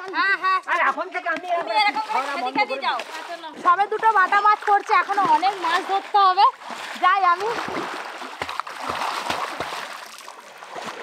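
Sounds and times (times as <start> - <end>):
water splashing from swimmers: 0.0 - 11.0.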